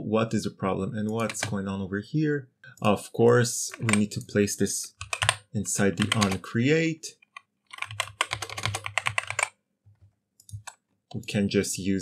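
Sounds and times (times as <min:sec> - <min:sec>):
typing on computer keyboard: 0:01.1 - 0:01.6, 0:03.8 - 0:04.2, 0:05.0 - 0:05.4, 0:06.0 - 0:06.4, 0:07.3 - 0:10.8.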